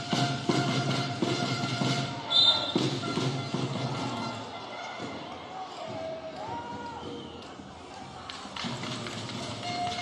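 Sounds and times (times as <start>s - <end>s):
large sports hall ambience: 0.0s - 10.0s.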